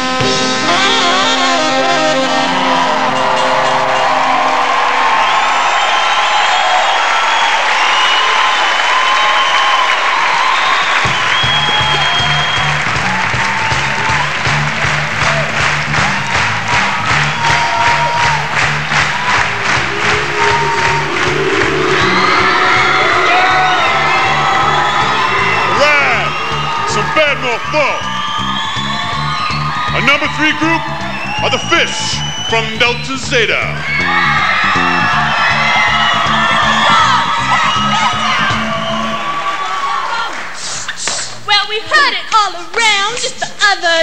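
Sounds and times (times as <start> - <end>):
band music: 0.0 - 5.6, 11.1 - 39.4
audience applauding and cheering: 0.0 - 41.0
bass line with steady beat: 11.5 - 39.1.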